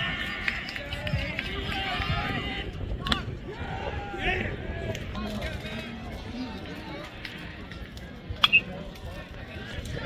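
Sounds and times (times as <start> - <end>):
spectators chattering and calling: 0.0 - 10.0.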